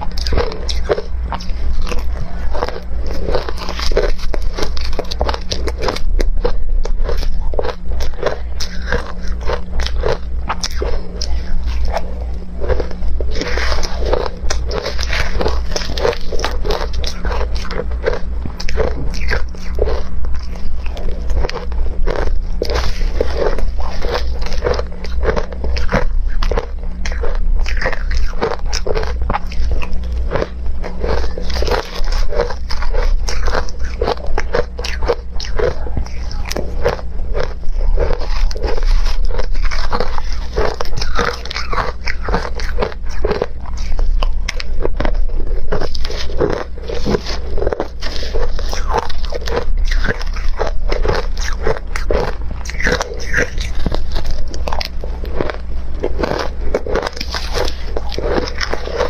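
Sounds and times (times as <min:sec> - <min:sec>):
ice being chewed: 0:00.0 - 0:59.0
low hum: 0:00.0 - 0:59.0.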